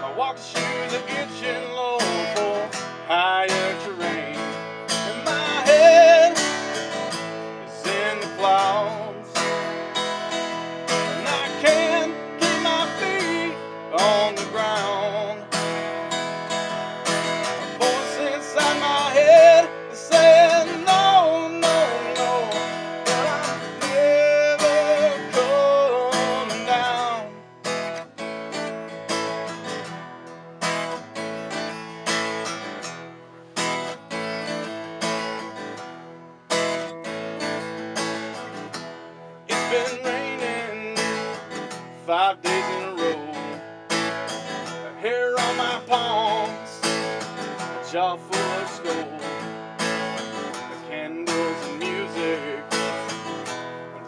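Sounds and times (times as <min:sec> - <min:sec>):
acoustic guitar strumming: 0:00.0 - 0:54.0
bending lead guitar melody: 0:00.0 - 0:54.0.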